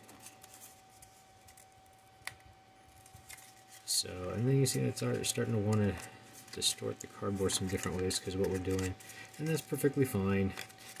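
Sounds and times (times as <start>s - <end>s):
cardboard tube crinkling: 2.8s - 11.0s.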